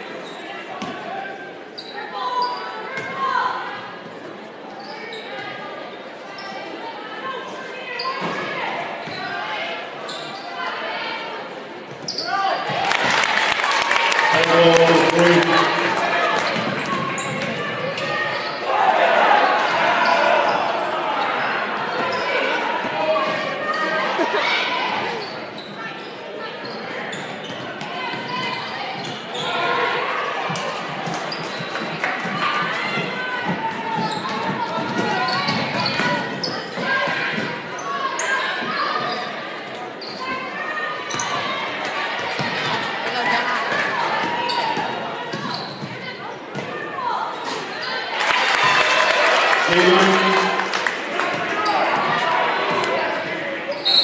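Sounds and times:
crowd and player voices: 0:00.0 - 0:54.0.

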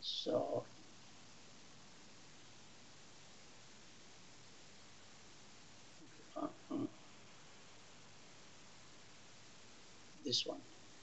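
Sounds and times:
man saying uh: 0:00.0 - 0:00.6, 0:06.4 - 0:06.9, 0:10.3 - 0:10.6
faint steady hiss: 0:00.0 - 0:11.0.

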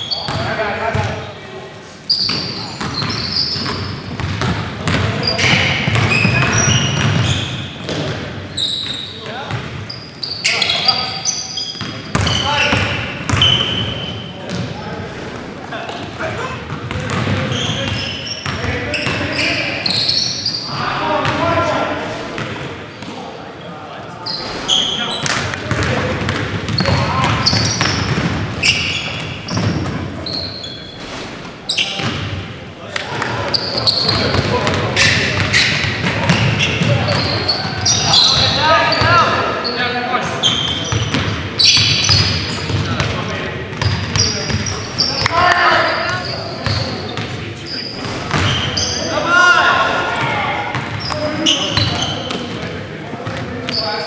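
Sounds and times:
sneaker squeaks: 0:00.0 - 0:14.8, 0:15.8 - 0:21.4, 0:22.2 - 0:32.3, 0:33.2 - 0:54.0
players calling out: 0:02.1 - 0:31.0, 0:31.6 - 0:54.0.

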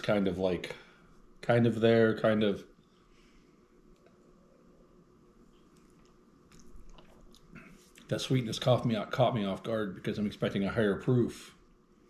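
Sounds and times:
faint sipping: 0:05.5 - 0:08.1.

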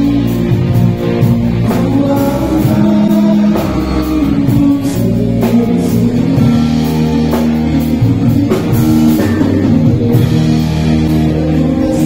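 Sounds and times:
bass guitar: 0:00.0 - 0:12.0
drum kit: 0:00.0 - 0:12.0
electric guitars: 0:00.0 - 0:12.0.

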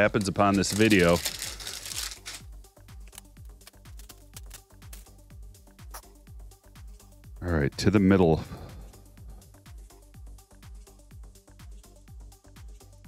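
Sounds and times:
plastic shrink-wrap crinkling and tearing: 0:00.0 - 0:02.4, 0:03.0 - 0:05.1
faint background music with beat: 0:00.0 - 0:13.0.

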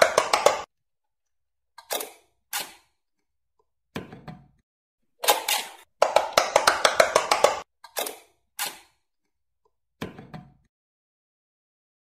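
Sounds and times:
pop-it game clicking pops: 0:00.0 - 0:00.7, 0:06.0 - 0:07.7.

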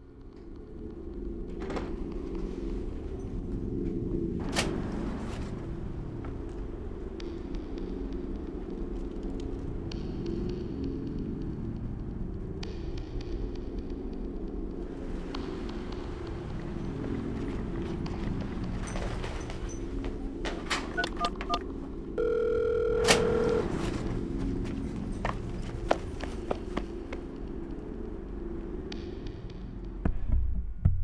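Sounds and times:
telephone keypad tones: 0:21.0 - 0:21.6, 0:22.2 - 0:23.7
low steady hum: 0:21.0 - 0:26.2
steady telephone line tone: 0:22.2 - 0:23.9.

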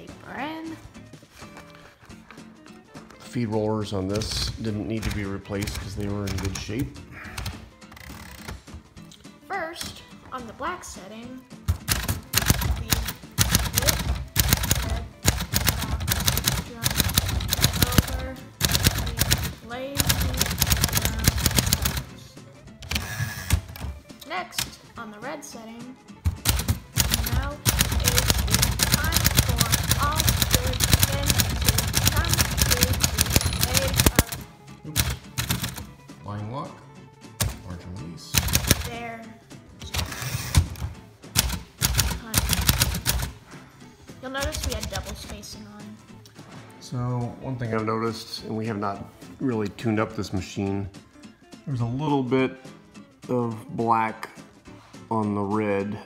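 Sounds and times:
manual typewriter typing: 0:04.2 - 0:06.7, 0:11.8 - 0:22.2, 0:22.8 - 0:23.9, 0:26.3 - 0:35.9, 0:37.4 - 0:37.6, 0:38.3 - 0:39.0, 0:39.8 - 0:43.4, 0:44.4 - 0:45.4.

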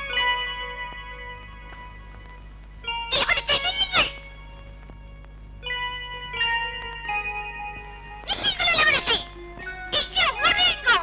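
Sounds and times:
film background music: 0:00.0 - 0:11.0.

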